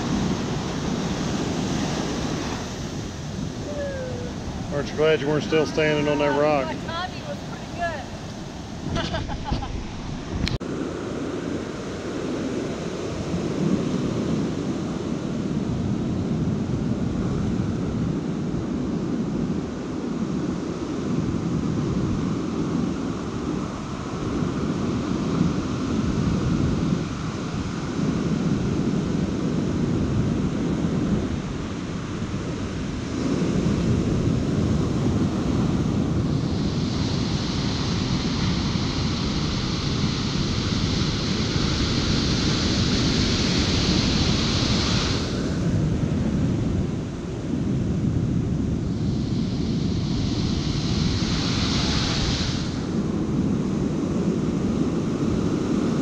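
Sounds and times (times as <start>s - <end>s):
surf breaking on beach: 0.0s - 56.0s
foaming water hiss: 36.4s - 45.7s, 48.9s - 53.2s.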